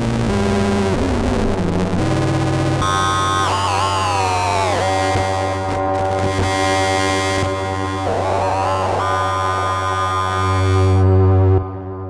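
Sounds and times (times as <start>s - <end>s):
analog synthesizer low note: 0.0s - 12.0s.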